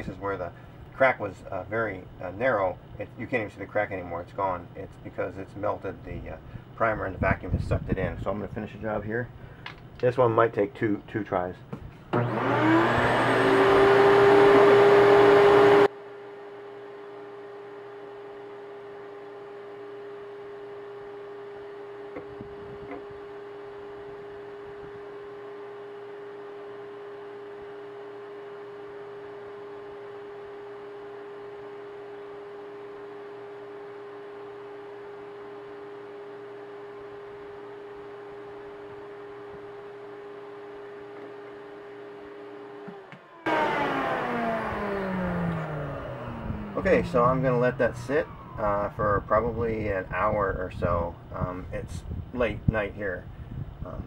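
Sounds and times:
vacuum cleaner motor running: 12.1s - 51.6s.

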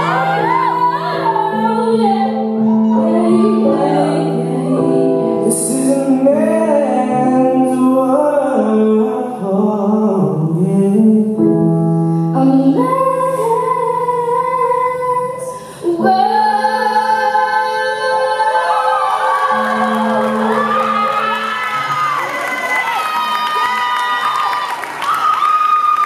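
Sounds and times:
woman singing: 0.0s - 7.4s, 12.4s - 21.7s
audience cheering and shouting: 18.6s - 26.0s.

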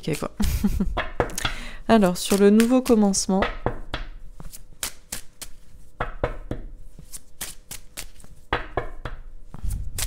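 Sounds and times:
cards shuffled by hand: 2.1s - 3.1s, 4.4s - 5.7s, 6.9s - 8.4s, 9.5s - 10.0s.

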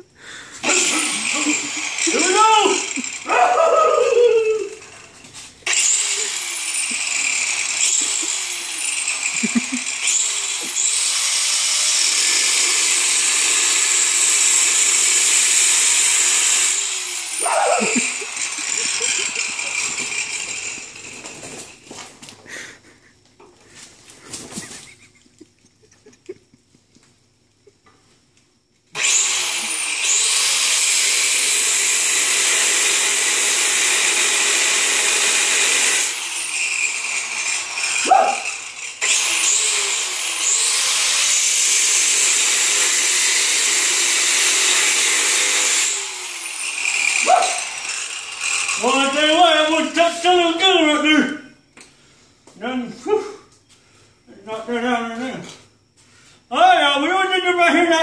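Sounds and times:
angle grinder cutting metal: 0.6s - 21.9s, 28.9s - 50.4s.

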